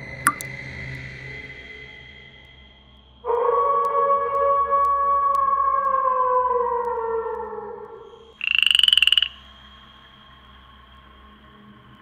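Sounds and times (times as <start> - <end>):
faint steady high tone: 0.3 - 0.5
frog croaking: 8.3 - 9.4.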